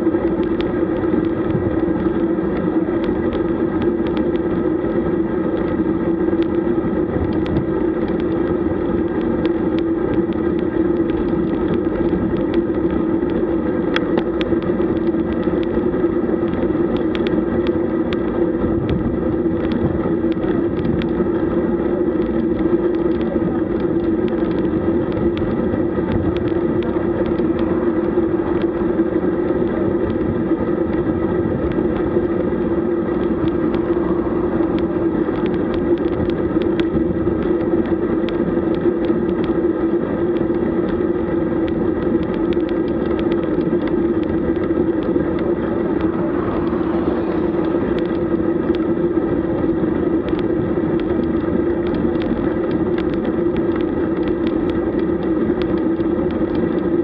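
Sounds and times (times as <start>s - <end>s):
bike tyres on asphalt: 0.0s - 57.0s
constant hum: 0.0s - 57.0s
wind noise: 0.0s - 57.0s.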